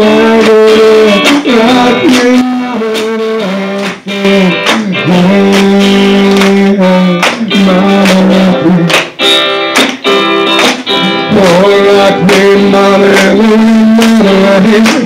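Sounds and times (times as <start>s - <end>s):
live band with guitar: 0.0s - 15.0s.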